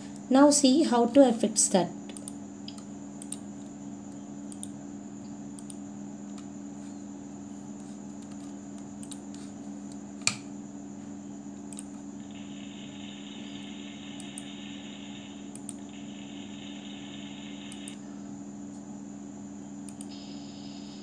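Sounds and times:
steady low hum: 0.0 - 21.0
mouse click: 17.6 - 18.0.

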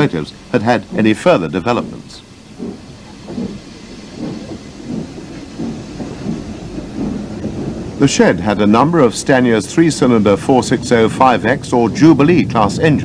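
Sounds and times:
steady hiss: 0.0 - 13.0
steam locomotive rumble: 0.0 - 13.0.

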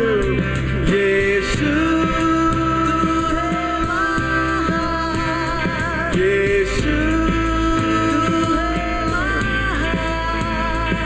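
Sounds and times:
acoustic guitar: 0.0 - 11.0
bass guitar: 0.0 - 11.0
electric guitar: 0.0 - 11.0
keyboard: 0.0 - 11.0
man singing: 0.0 - 11.0.

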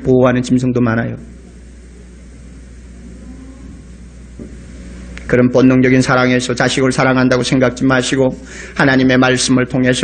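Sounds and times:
low hum: 0.0 - 10.0
recording hiss: 0.0 - 10.0.

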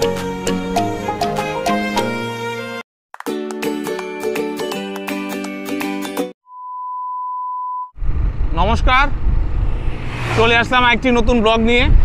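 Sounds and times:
wind on microphone: 8.0 - 12.0
scooter road noise: 9.1 - 11.7
man talking: 10.3 - 12.0.

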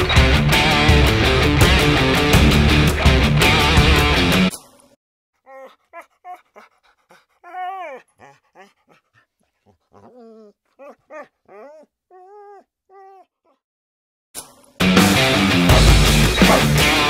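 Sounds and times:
dog whining: 5.5 - 13.6.

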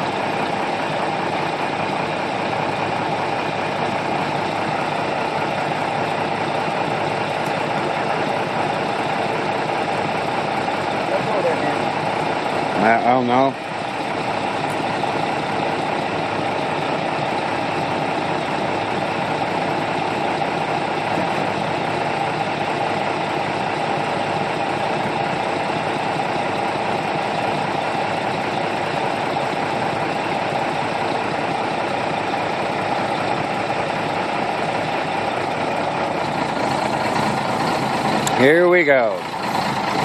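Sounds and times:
diesel truck engine idling: 0.0 - 40.0.

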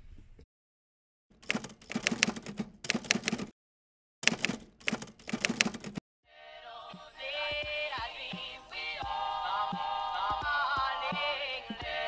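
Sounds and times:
typewriter keystrokes clacking: 1.4 - 3.5, 4.2 - 6.0.

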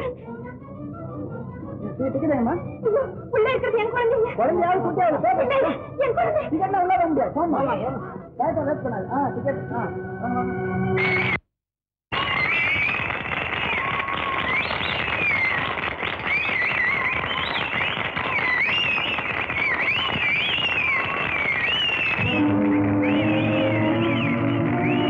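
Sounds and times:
music: 0.0 - 11.4, 12.3 - 25.0
shrill whistles: 10.9 - 11.4, 12.2 - 25.0
crowd cheering and clapping: 12.1 - 25.0.

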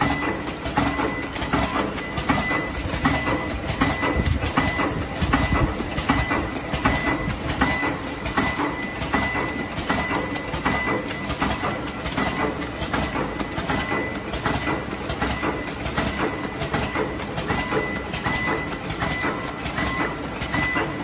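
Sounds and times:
high machine whine: 0.0 - 21.0
packing machine clattering: 0.0 - 21.0.

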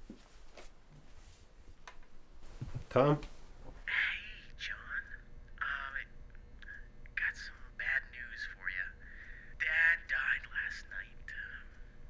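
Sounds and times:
person speaking: 2.8 - 11.9.

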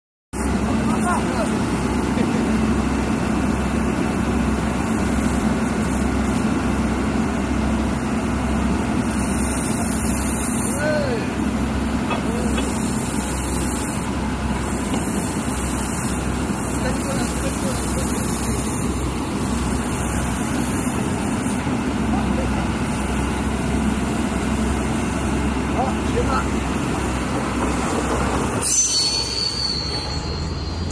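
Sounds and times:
drilling rig engine and machinery: 0.4 - 30.9.

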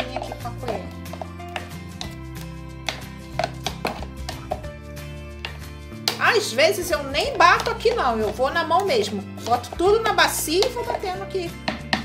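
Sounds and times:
spoon scraping blender jar: 0.0 - 5.7, 6.8 - 11.3
background music: 0.0 - 12.0.

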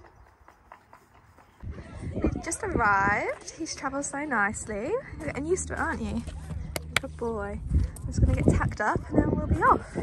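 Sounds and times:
low rumbling noise: 4.0 - 10.0.

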